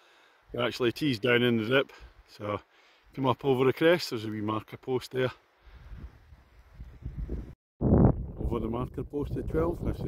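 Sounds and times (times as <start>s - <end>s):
wind buffeting microphone: 5.9s - 10.0s.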